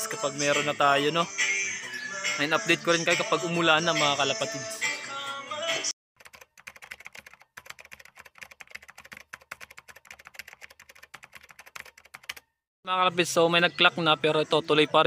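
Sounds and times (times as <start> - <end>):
person speaking over music: 2.4 - 5.0.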